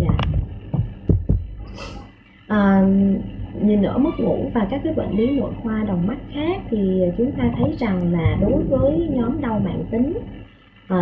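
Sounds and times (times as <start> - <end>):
dull low thumps: 0.0 - 1.8, 4.8 - 10.5
breath-like hiss: 1.7 - 2.1.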